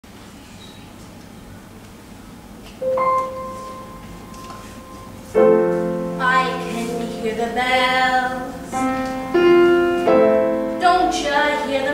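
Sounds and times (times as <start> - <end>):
grand piano chord: 2.8 - 11.6.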